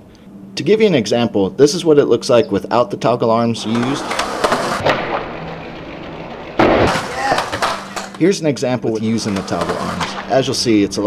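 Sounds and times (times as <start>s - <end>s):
skateboard slamming on concrete: 3.7s - 5.5s, 6.6s - 8.2s.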